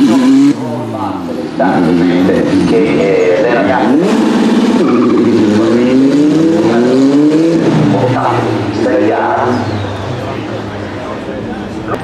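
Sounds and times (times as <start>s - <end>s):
race car engine accelerating: 0.0s - 12.0s.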